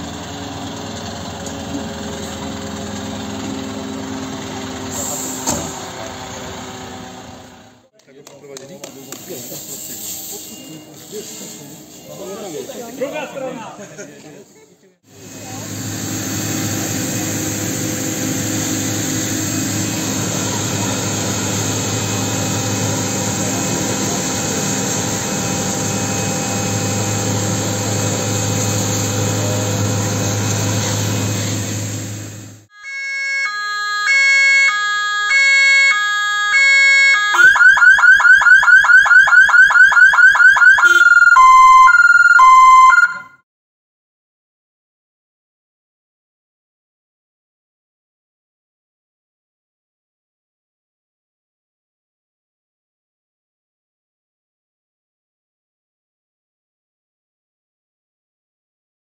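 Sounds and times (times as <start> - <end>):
fire engine pump humming: 0.0 - 7.8, 15.1 - 43.3
electronic siren cycling tones: 32.7 - 43.4.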